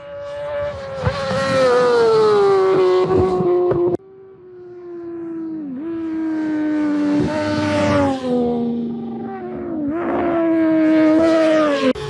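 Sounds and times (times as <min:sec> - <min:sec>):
motorcycle engines revving high: 0:00.0 - 0:12.0.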